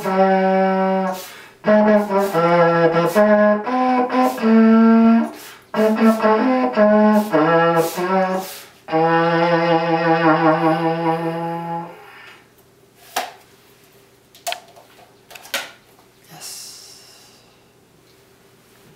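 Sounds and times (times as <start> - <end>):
homemade trombone notes: 0.0 - 12.3.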